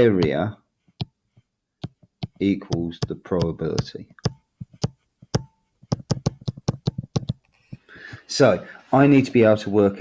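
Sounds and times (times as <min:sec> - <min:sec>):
stylus tapping on touchscreen: 0:00.0 - 0:08.2.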